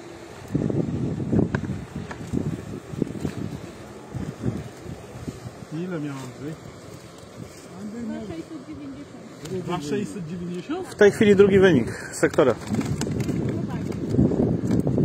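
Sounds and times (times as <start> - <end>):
wind buffeting microphone: 0.2 - 9.8, 11.0 - 15.0
men talking: 5.6 - 6.8, 7.5 - 8.4, 9.4 - 12.8.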